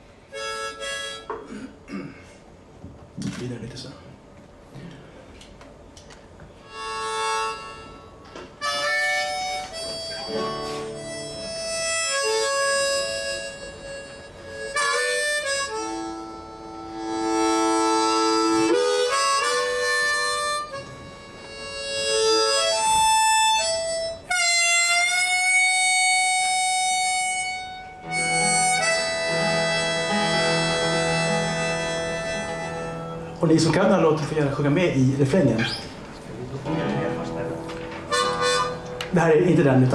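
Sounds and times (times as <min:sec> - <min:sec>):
harmonica playing a melody: 0:00.3 - 0:01.6, 0:06.6 - 0:33.7, 0:36.7 - 0:39.2.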